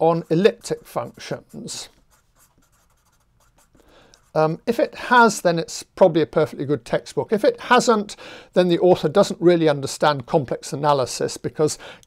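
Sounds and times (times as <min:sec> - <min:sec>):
marker scratching on paper: 0:00.0 - 0:04.6.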